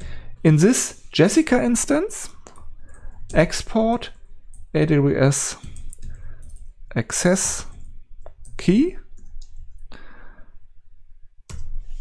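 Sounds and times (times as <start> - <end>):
computer keyboard clicks: 2.4 - 3.1, 5.6 - 6.7, 7.7 - 9.8.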